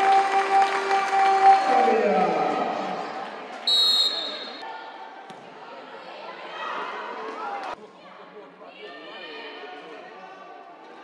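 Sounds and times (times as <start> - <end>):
echoing voices in sports hall: 0.0 - 11.0
referee's whistle blast: 3.7 - 4.6.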